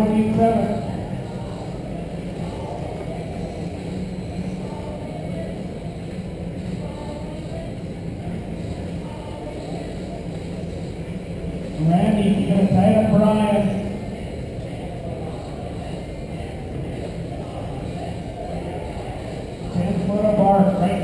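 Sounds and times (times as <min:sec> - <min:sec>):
faint distant voices: 0:00.0 - 0:21.0
indoor hall hum: 0:00.0 - 0:21.0.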